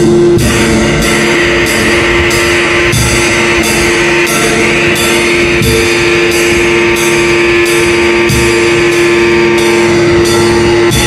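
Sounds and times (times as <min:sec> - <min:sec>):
distorted electric guitar: 0:00.0 - 0:11.0
drums: 0:00.0 - 0:11.0.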